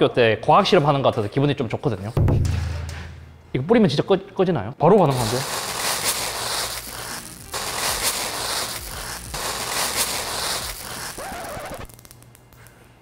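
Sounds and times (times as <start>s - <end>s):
capsules crackling and popping in fire: 5.1s - 12.8s.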